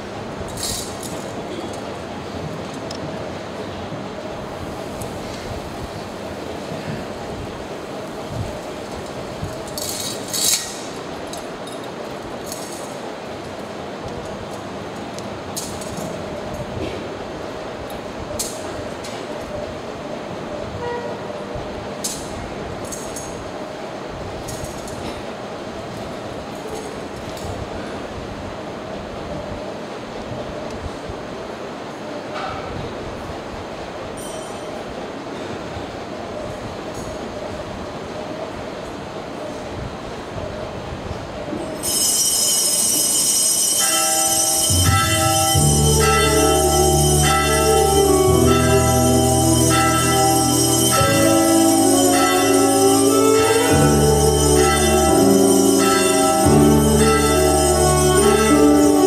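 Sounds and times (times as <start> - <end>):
steady background hiss: 0.0 - 59.0
bells ringing: 34.2 - 34.8, 41.6 - 59.0
low musical notes: 43.8 - 59.0.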